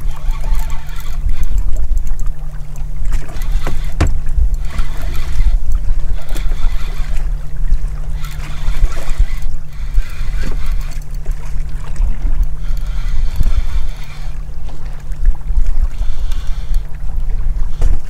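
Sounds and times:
boat engine rumble: 0.0 - 18.0.

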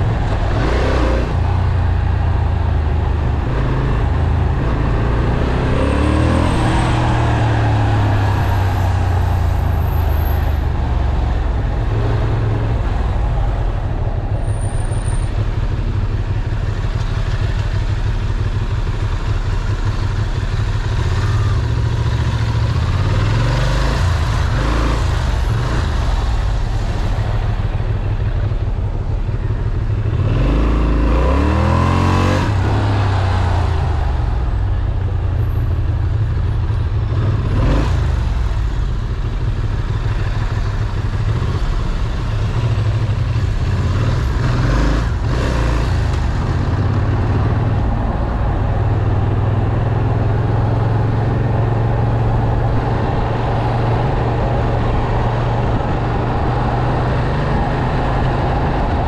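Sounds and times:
motorcycle engine revving: 0.0 - 13.2, 13.8 - 59.0
motorcycle engine running: 0.0 - 59.0.

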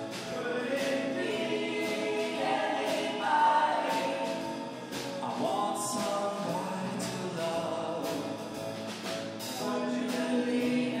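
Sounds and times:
choir singing in harmony: 0.0 - 7.1, 9.6 - 11.0.

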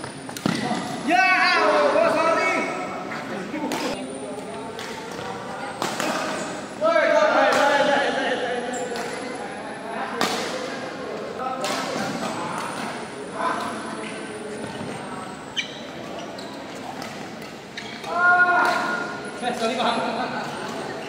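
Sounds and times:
voices: 0.4 - 21.0
rackets hitting shuttlecock: 4.6 - 6.6, 8.8 - 9.3, 10.1 - 10.9, 11.6 - 13.0.

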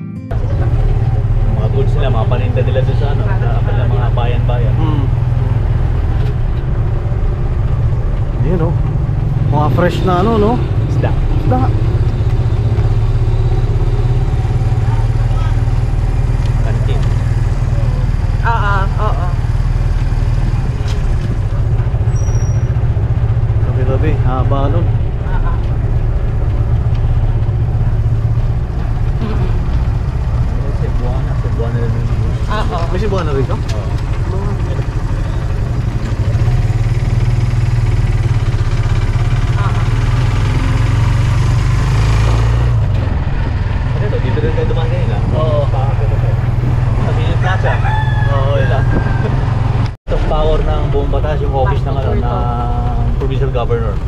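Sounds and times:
motorcycle engine rumbling: 0.3 - 54.0.

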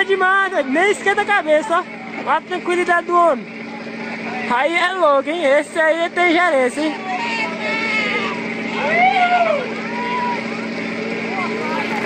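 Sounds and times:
ferry engine idling hum: 0.0 - 12.0
people calling out and exclaiming: 0.0 - 12.0
long drawn-out shout: 6.9 - 10.8.

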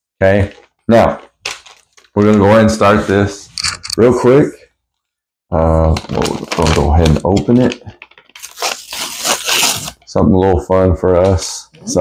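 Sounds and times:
packaging ripping and crinkling: 1.4 - 2.7, 5.8 - 10.0.

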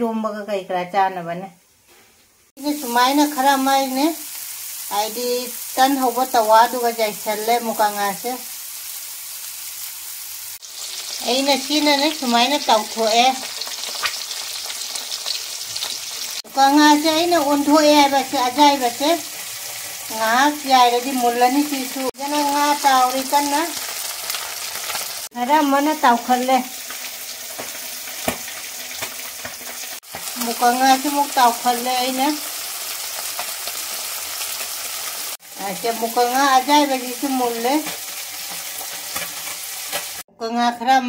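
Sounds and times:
fish sizzling in hot oil: 2.4 - 40.3.

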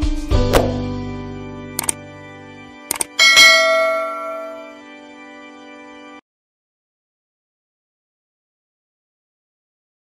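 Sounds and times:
mouse click: 1.8 - 2.0, 2.9 - 3.2
notification bell ringing: 3.2 - 4.8.

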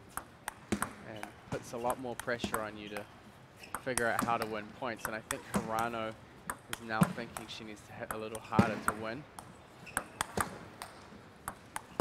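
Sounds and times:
table tennis ball clicks: 0.1 - 5.9, 6.5 - 12.0.

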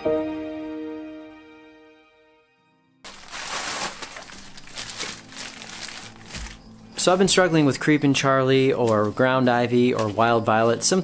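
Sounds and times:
music: 0.0 - 11.0
plastic wrapping crinkling: 3.0 - 6.7.

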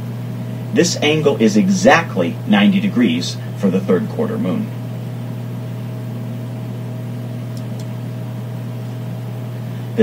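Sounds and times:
low hum with hiss: 0.0 - 10.0.

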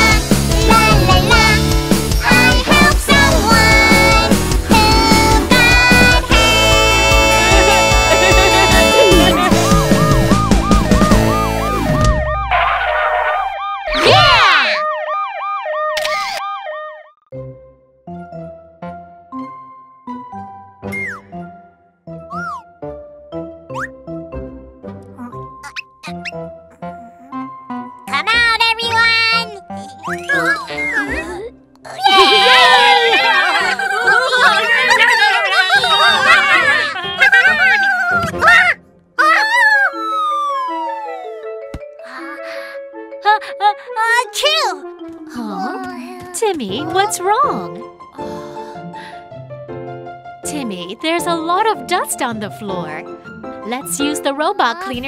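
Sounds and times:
song music: 0.0 - 13.0
cartoon siren wailing: 6.8 - 17.2, 32.0 - 41.6
descending slide whistle: 9.0 - 12.9, 39.7 - 41.4
squeaky cartoon vocalisation: 22.3 - 22.6, 25.2 - 27.5, 29.7 - 32.1, 37.0 - 41.4
soft background music: 39.5 - 55.0.

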